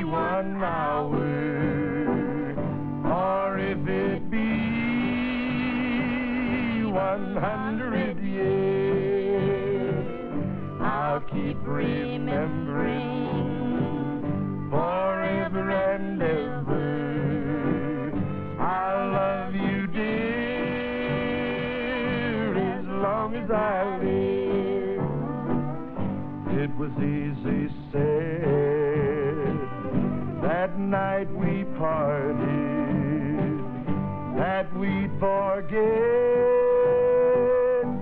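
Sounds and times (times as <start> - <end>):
man and woman singing in harmony: 0.0 - 25.6, 26.6 - 29.8
acoustic guitar: 0.0 - 38.0.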